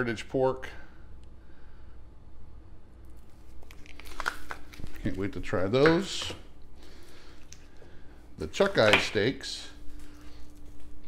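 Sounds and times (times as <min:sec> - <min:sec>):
plastic packages crinkling: 0:03.2 - 0:06.4.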